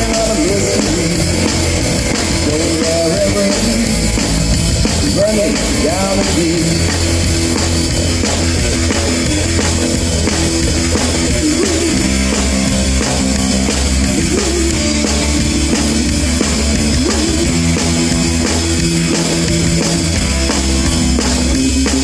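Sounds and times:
amplified guitar with bent notes: 0:00.0 - 0:22.0
drum kit beat: 0:00.0 - 0:22.0.

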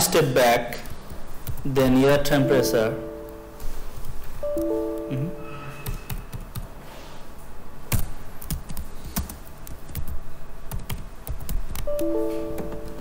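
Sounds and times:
computer keyboard typing: 0:00.8 - 0:03.4, 0:04.0 - 0:05.1, 0:05.8 - 0:06.8, 0:07.9 - 0:13.0.

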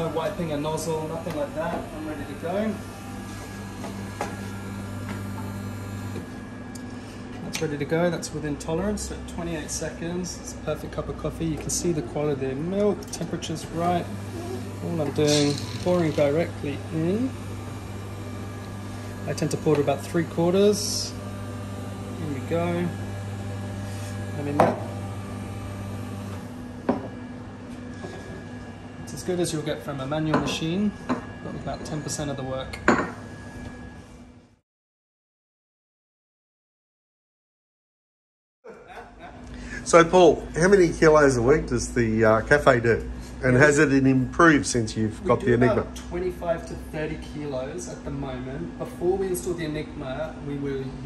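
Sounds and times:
espresso machine pump humming: 0:00.0 - 0:33.9, 0:39.0 - 0:48.2.

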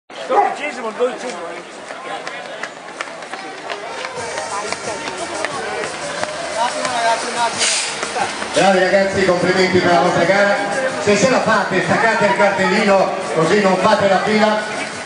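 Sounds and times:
spectators talking and calling: 0:00.1 - 0:15.0.

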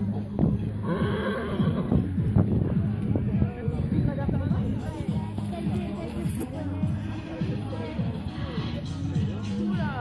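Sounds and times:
background music: 0:00.0 - 0:10.0
horse whinnying: 0:00.8 - 0:02.1.

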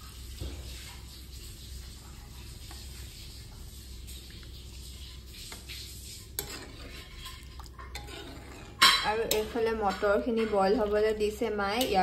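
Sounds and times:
gravy simmering and bubbling: 0:00.0 - 0:12.0.

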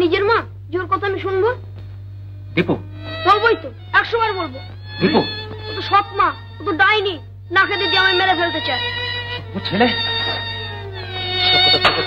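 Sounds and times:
steady low hum: 0:00.0 - 0:12.0
boy speaking: 0:03.2 - 0:04.6, 0:05.7 - 0:08.9.

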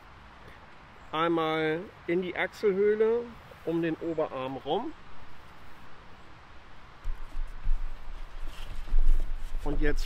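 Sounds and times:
clothing brushing microphone: 0:07.1 - 0:10.0
splint and hoodie rustling: 0:07.2 - 0:10.0.

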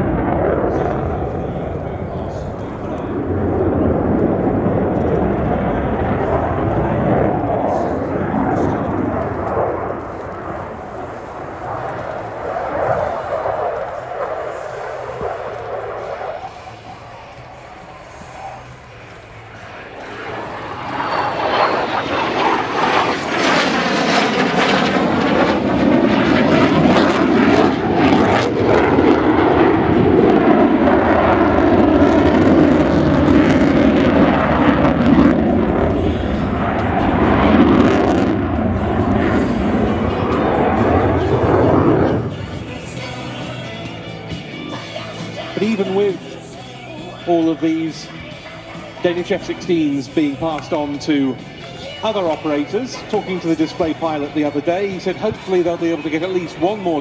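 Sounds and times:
fighter jet passing overhead: 0:00.0 - 0:57.0.

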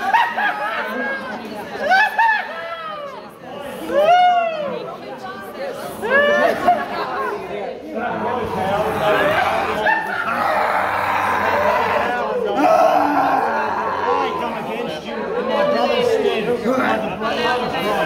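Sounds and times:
people making wordless vocal sounds: 0:08.2 - 0:14.8.

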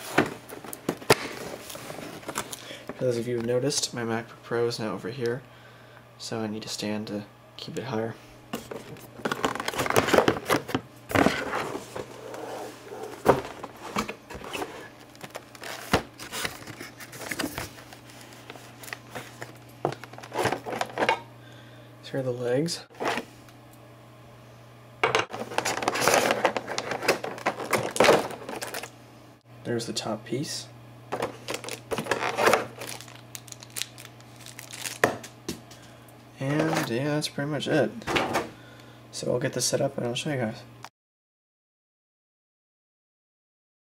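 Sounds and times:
steady low hum: 0:00.0 - 0:40.8
plastic packaging crinkling: 0:08.6 - 0:10.7, 0:12.8 - 0:21.1, 0:25.3 - 0:28.9, 0:31.1 - 0:35.4.

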